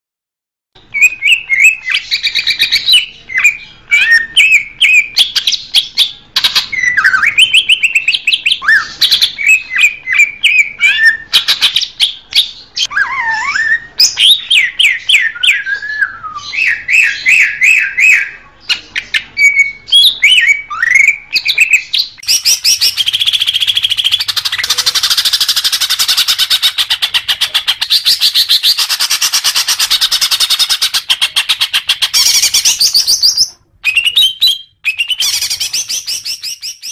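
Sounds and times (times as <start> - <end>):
bird whistled song and chattering: 0.8 - 36.9.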